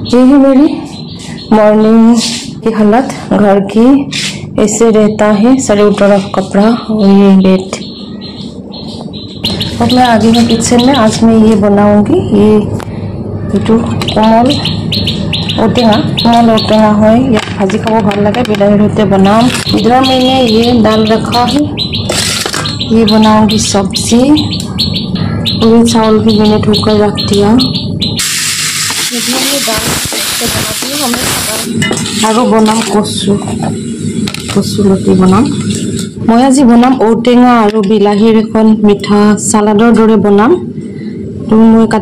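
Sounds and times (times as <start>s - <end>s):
woman's voice: 0.0s - 7.9s, 9.7s - 12.9s, 13.5s - 14.7s, 15.6s - 21.8s, 22.8s - 24.6s, 25.6s - 27.8s, 29.0s - 33.8s, 34.4s - 42.0s
small bird chirping: 6.2s - 11.2s, 13.4s - 17.0s, 19.4s - 28.4s
lentils sizzling in a pan: 28.2s - 31.7s.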